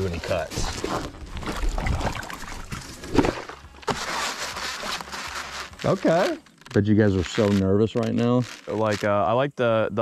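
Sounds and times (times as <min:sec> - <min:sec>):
water splashing and sloshing: 0:00.1 - 0:05.8.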